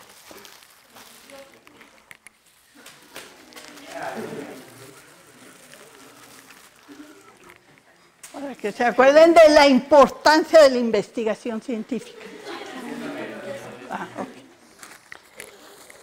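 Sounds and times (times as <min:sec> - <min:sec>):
plastic bag crinkling: 0:00.0 - 0:08.8, 0:14.6 - 0:16.0.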